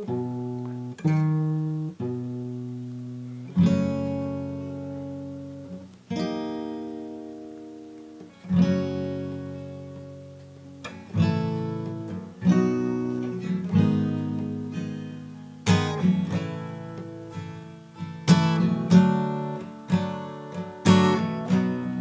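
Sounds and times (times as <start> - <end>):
acoustic guitar notes and chords: 0.0 - 22.0.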